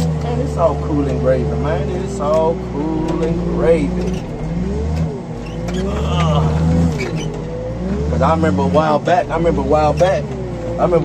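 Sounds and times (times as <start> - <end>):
diesel engine running: 0.0 - 11.0.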